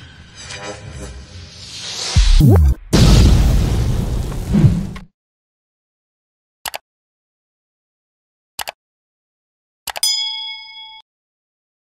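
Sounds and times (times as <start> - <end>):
metallic bell ding: 10.0 - 11.1.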